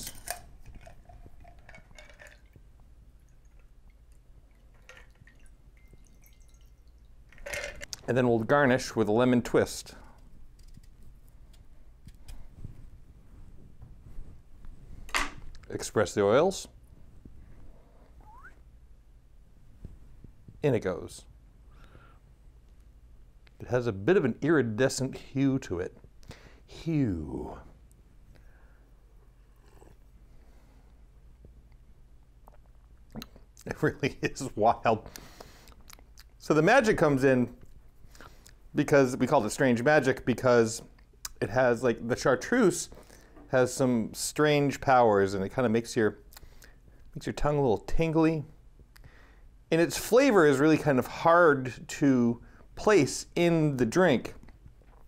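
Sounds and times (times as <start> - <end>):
low steady hum: 0.0 - 55.0
liquid trickling into glass: 4.5 - 7.2
person sipping from a glass: 29.5 - 30.0.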